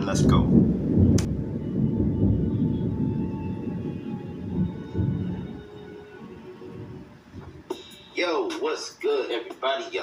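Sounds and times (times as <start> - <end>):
deep rumbling: 0.0 - 7.7.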